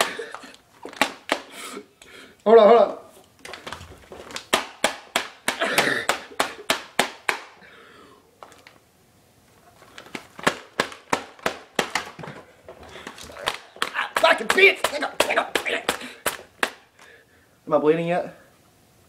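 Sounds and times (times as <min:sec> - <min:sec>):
sharp taps and knocks: 0:10.1 - 0:16.8.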